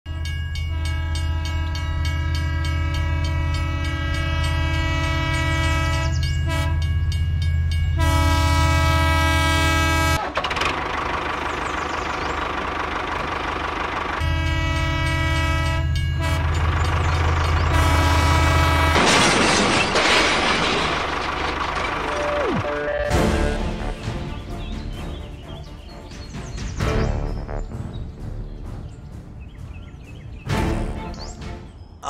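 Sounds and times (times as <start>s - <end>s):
train horn blasts: 0.1s - 6.9s, 7.9s - 10.2s, 14.2s - 19.2s
rumbling train noise: 0.1s - 32.0s.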